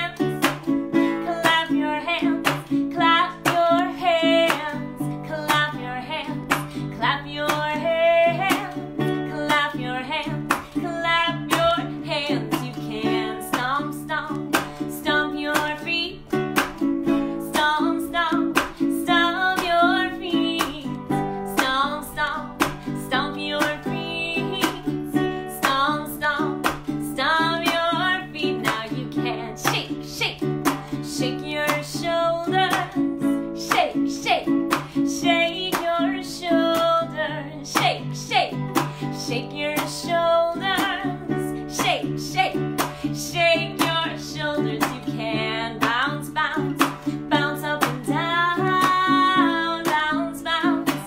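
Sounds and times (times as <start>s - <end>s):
strummed acoustic string instrument: 0.0s - 51.0s
woman singing: 0.0s - 51.0s.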